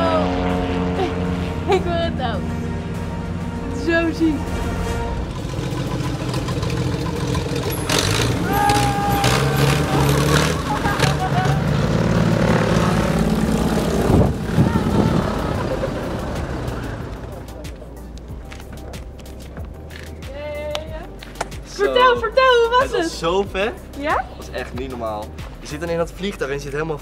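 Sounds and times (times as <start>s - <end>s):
propeller plane engine droning: 0.0s - 18.4s.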